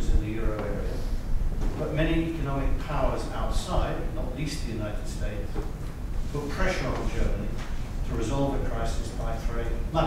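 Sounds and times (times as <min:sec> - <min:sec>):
low room rumble: 0:00.0 - 0:10.0
man talking: 0:00.0 - 0:10.0.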